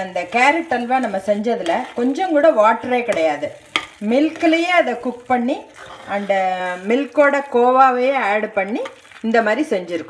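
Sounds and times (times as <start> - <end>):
frying sizzle: 0.0 - 10.0
spoon stirring in metal pan: 0.0 - 10.0.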